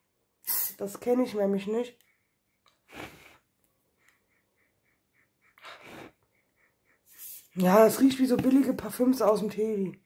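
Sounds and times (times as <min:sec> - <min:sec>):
faint nose sniff: 0:02.7 - 0:07.6.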